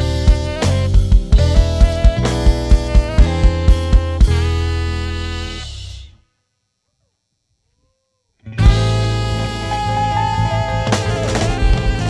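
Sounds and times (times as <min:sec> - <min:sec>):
live band playing: 0:00.0 - 0:05.9, 0:08.6 - 0:12.0
band chord: 0:00.0 - 0:06.1, 0:08.5 - 0:12.0.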